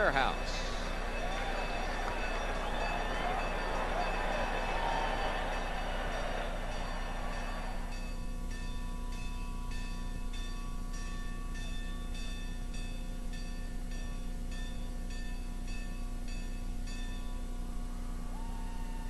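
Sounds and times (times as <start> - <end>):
stadium crowd cheering: 0.0 - 9.9, 17.8 - 19.0.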